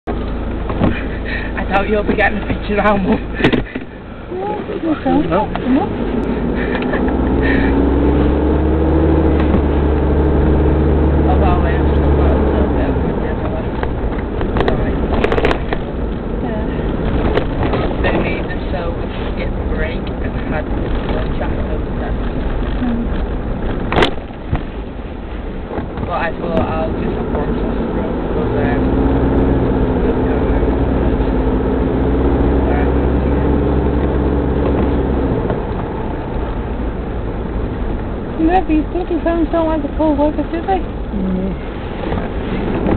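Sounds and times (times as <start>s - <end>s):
engine and road drone: 0.0s - 42.9s
person laughing: 6.6s - 7.8s.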